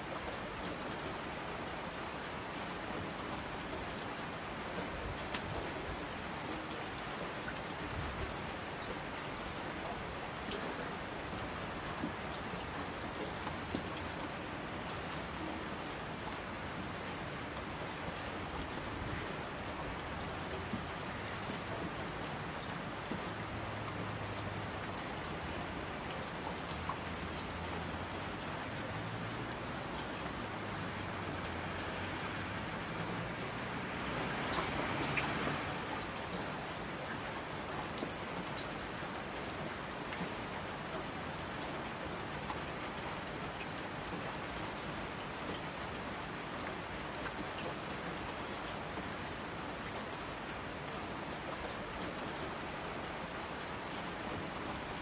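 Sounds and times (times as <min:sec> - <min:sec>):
steady rain falling: 0:00.0 - 0:55.0
raindrop ticks: 0:03.8 - 0:04.1, 0:04.8 - 0:08.2, 0:11.4 - 0:15.6, 0:16.8 - 0:46.2.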